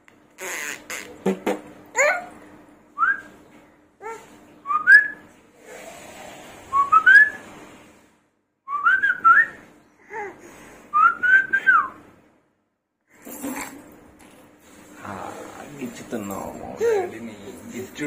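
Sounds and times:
man whistling: 0:03.0 - 0:03.3, 0:04.7 - 0:05.2, 0:06.8 - 0:07.4, 0:08.7 - 0:09.6, 0:11.0 - 0:12.0.

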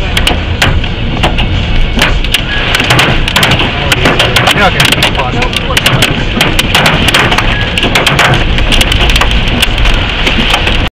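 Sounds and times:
hailstones hitting a car: 0:00.0 - 0:10.9.

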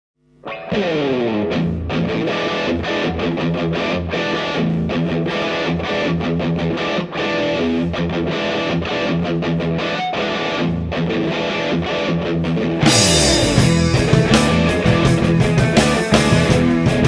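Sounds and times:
distorted electric guitar riff: 0:00.2 - 0:17.0.

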